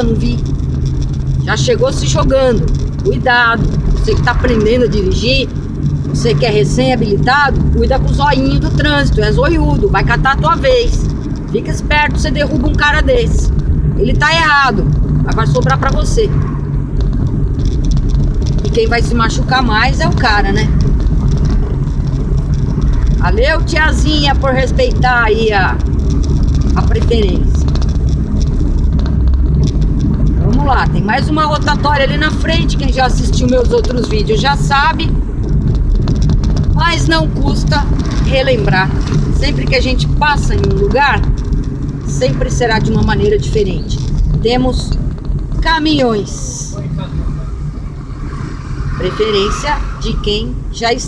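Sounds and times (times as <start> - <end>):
car engine and tyres rumbling: 0.0 - 51.0.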